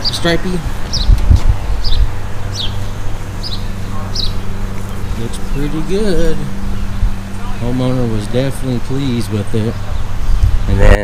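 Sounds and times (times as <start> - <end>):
songbird chirping: 0.0 - 10.7
low rumble: 0.0 - 11.0
steady low hum: 0.0 - 11.0.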